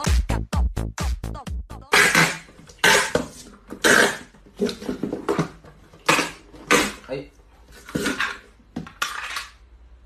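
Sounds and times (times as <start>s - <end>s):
packing tape ripping off roll: 1.9s - 7.0s.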